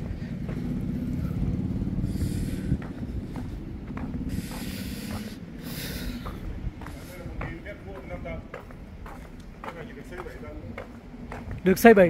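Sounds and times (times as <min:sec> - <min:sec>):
vehicle engine running: 0:00.0 - 0:11.6.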